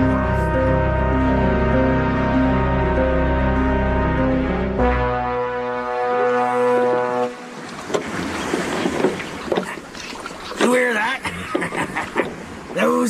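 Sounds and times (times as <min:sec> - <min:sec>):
orchestral chord: 0:00.0 - 0:07.7
washing water: 0:06.3 - 0:12.4.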